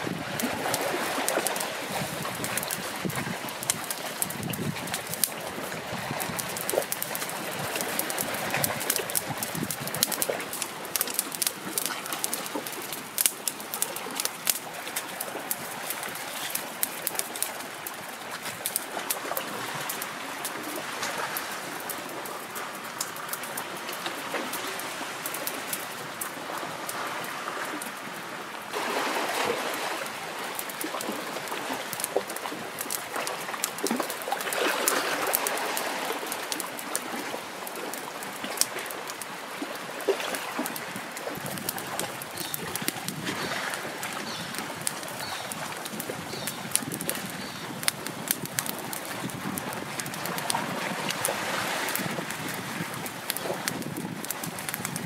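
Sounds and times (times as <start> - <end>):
steady outdoor hiss: 0.0 - 55.0
twig fire crackling and popping: 0.1 - 26.4, 29.9 - 55.0.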